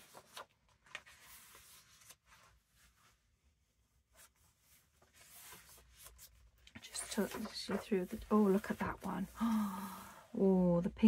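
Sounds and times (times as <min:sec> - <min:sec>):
book pages turning: 0:00.0 - 0:03.2, 0:04.0 - 0:09.5.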